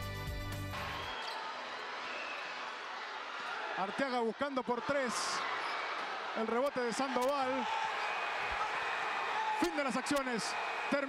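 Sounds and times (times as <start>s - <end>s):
arena crowd din: 0.7s - 11.0s.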